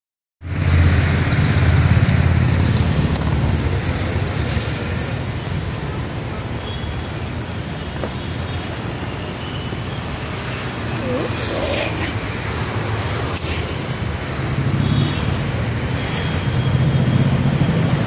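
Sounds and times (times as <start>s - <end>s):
road traffic with engine rumble: 0.4s - 18.0s.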